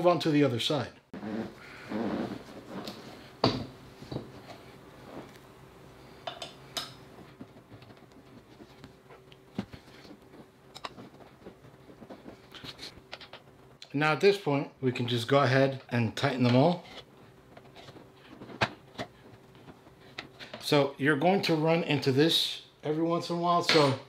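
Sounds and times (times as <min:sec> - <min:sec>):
rustling handling noise: 0:07.0 - 0:13.8.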